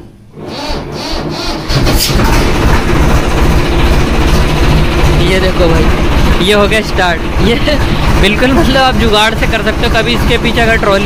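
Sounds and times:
diesel engine cranking and starting: 0:00.0 - 0:11.0.

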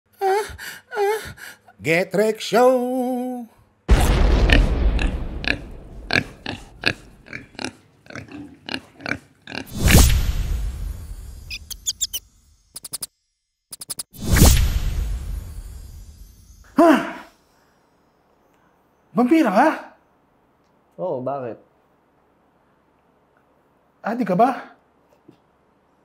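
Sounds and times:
loud boom: 0:03.9 - 0:07.2
pig grunting and oinking: 0:04.5 - 0:09.7
fast clicks: 0:11.7 - 0:13.1, 0:13.7 - 0:14.1.

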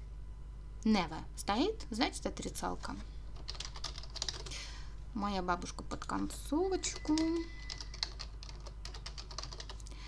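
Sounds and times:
keyboard typing: 0:03.4 - 0:04.6, 0:05.9 - 0:09.9.

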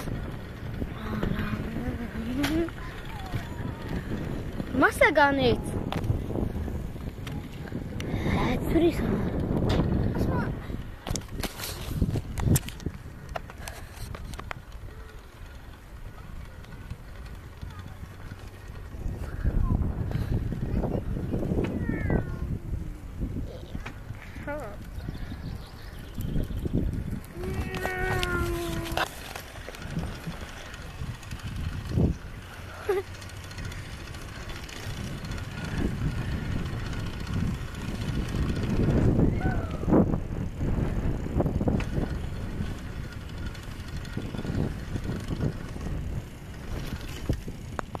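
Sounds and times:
bicycle rattling and clicking: 0:00.0 - 0:48.0
wind rumble on microphone: 0:00.0 - 0:48.0.

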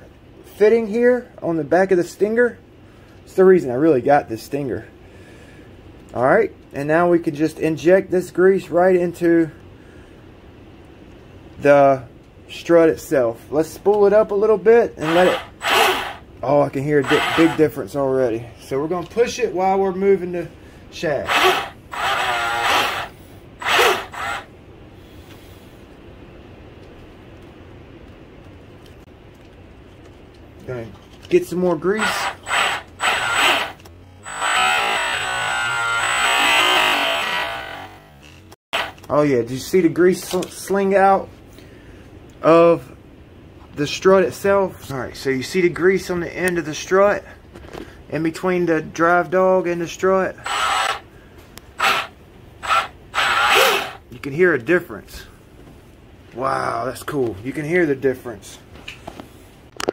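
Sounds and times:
man breathing out sharply: 0:05.0 - 0:05.8
motor spinning drive shaft: 0:15.0 - 0:16.2, 0:17.0 - 0:17.7, 0:21.2 - 0:24.5, 0:31.9 - 0:39.1, 0:50.4 - 0:51.1, 0:51.7 - 0:54.0.

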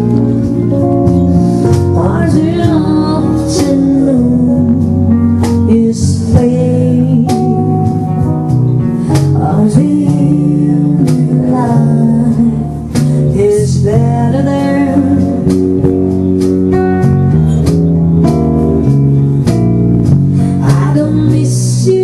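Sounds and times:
acoustic guitar: 0:00.0 - 0:22.0
bass guitar: 0:00.0 - 0:22.0
woman singing: 0:01.7 - 0:08.3, 0:09.1 - 0:16.0, 0:20.4 - 0:22.0.

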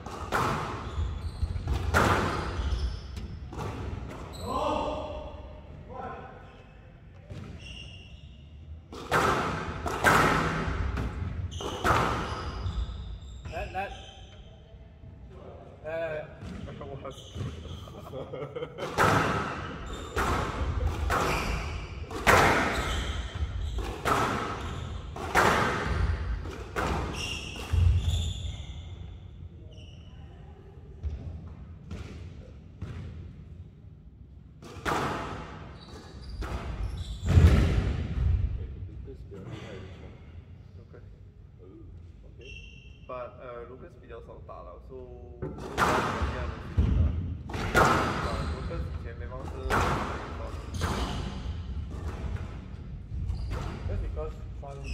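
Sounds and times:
low hum of hall: 0:00.0 - 0:54.9
squash ball smack: 0:08.9 - 0:12.3, 0:19.0 - 0:22.9, 0:23.8 - 0:28.0
squash ball cracks echoing: 0:22.1 - 0:22.8.

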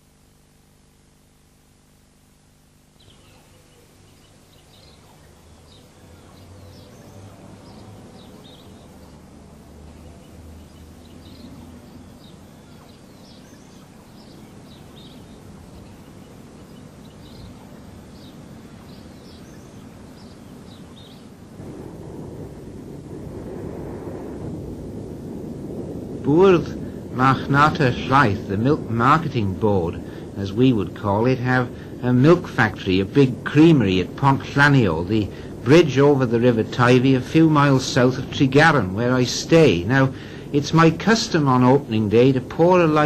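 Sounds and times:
small birds chirping: 0:02.8 - 0:22.2
steady rushing outdoor noise: 0:03.0 - 0:43.0.

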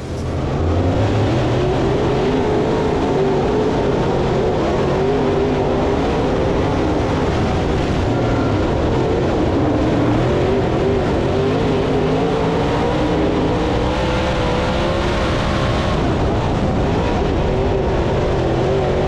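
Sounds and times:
race car engine revving: 0:00.0 - 0:19.0
wind noise: 0:00.0 - 0:19.0.

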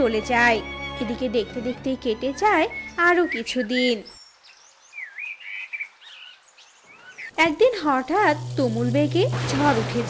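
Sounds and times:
bird chirps and warbling call: 0:02.4 - 0:07.8.

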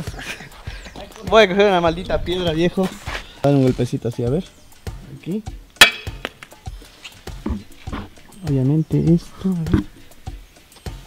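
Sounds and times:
stone tapping on bike frame: 0:05.8 - 0:06.5.

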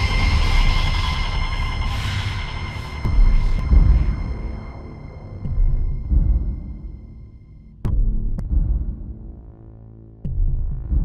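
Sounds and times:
heavy bass hit: 0:00.0 - 0:07.0
low synth drone: 0:00.0 - 0:10.2
dark electronic synth music: 0:00.0 - 0:11.0.

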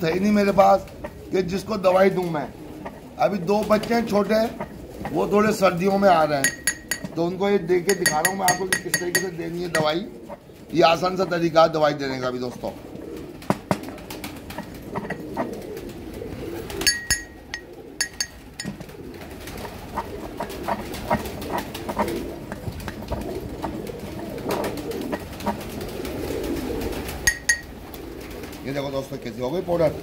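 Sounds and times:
pigeons cooing: 0:00.0 - 0:30.0
metal clink: 0:06.4 - 0:07.2, 0:16.9 - 0:18.8
pestle grinding in metal mortar: 0:06.4 - 0:10.0, 0:16.8 - 0:18.8, 0:27.3 - 0:27.7.

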